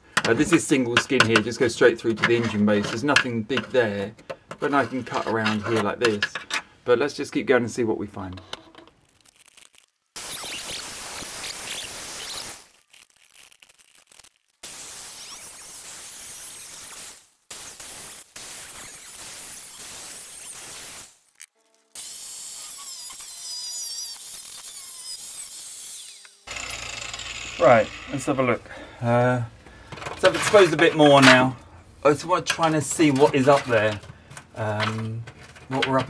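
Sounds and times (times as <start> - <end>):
angle grinder cutting steel: 22.0 - 28.7.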